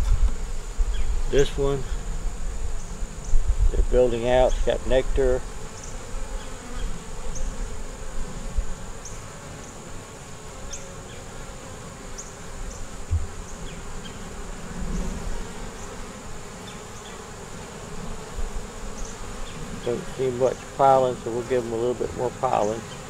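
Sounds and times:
honey bees buzzing: 0.0 - 23.0.

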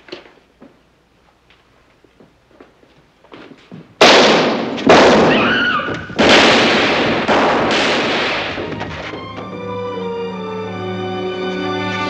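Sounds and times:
echoing revolver gunshots: 4.0 - 5.6, 6.2 - 8.7.

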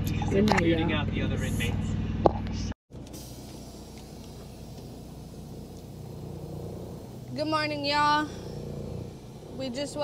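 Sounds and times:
diesel engine idling: 2.9 - 10.0.

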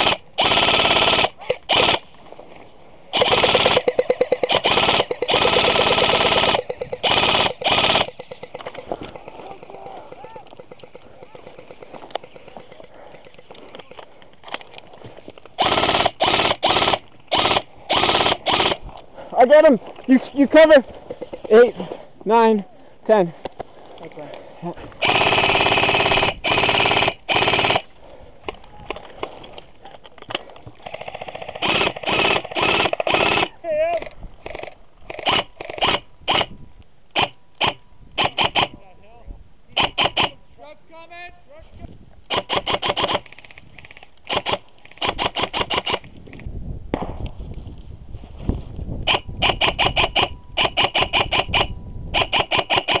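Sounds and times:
airsoft rifle full-auto bursts: 0.0 - 2.1, 3.1 - 8.8, 15.6 - 18.8, 25.0 - 27.9, 30.8 - 36.5, 37.2 - 38.7, 39.8 - 40.4, 42.3 - 46.4, 49.0 - 53.0
rustling: 0.4 - 22.4.

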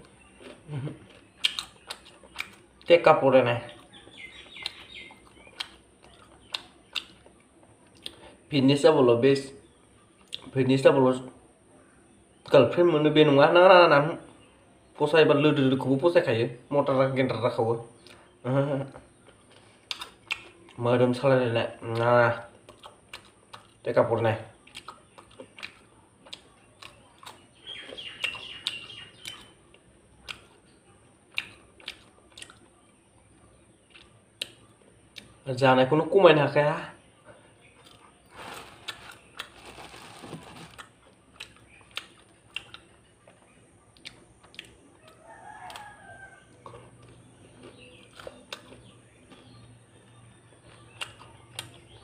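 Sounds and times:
rooster crowing: 45.0 - 46.9.

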